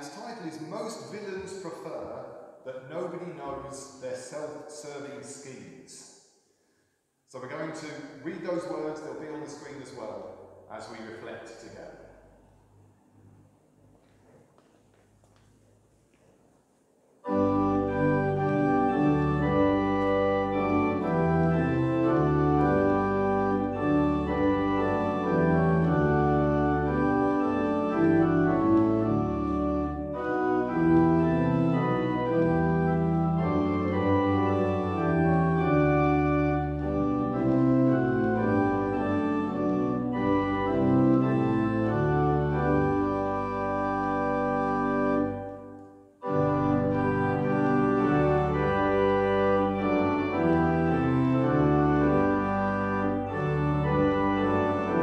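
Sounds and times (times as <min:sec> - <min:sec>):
church organ playing a hymn: 0:00.0 - 0:06.0, 0:07.3 - 0:12.3, 0:17.2 - 0:55.0.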